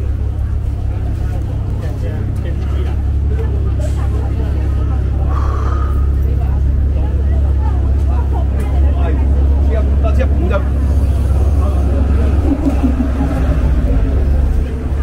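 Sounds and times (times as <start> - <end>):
low rumble of traffic: 0.0 - 15.0
passers-by talking: 0.0 - 15.0.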